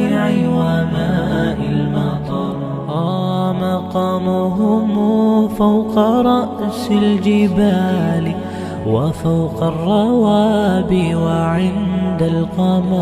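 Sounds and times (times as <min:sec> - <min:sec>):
humming vocal drone: 0:00.0 - 0:13.0
man singing: 0:00.0 - 0:13.0.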